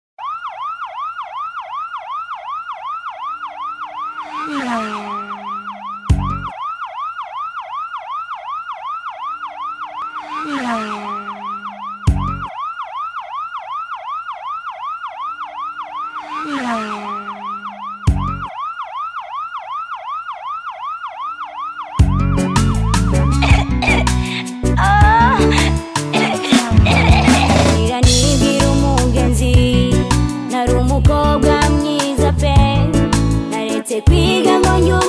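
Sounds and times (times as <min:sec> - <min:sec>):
emergency siren yelping: 0:00.2 - 0:27.8, 0:34.1 - 0:35.0.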